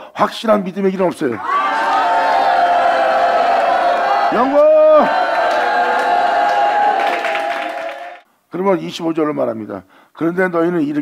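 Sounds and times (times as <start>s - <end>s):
congregation calling out together: 1.4s - 8.2s.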